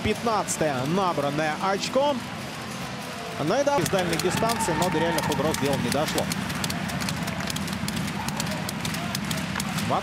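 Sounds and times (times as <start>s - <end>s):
crowd murmur: 2.2s - 10.0s
sticks skates and puck on ice: 3.8s - 10.0s.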